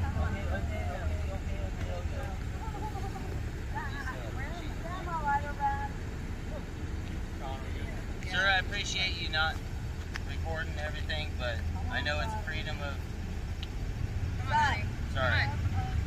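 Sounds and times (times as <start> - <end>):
distant people talking: 0.0 - 16.0
steady low rumble: 0.0 - 16.0.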